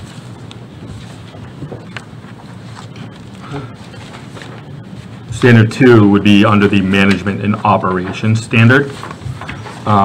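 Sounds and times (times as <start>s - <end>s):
faint paper rustling: 0.0s - 10.0s
low room noise: 0.0s - 10.0s.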